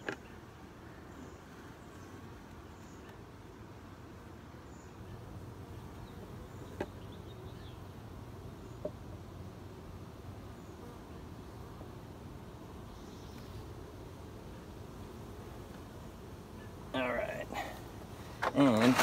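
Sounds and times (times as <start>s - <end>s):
honeybees buzzing: 0.0s - 19.0s.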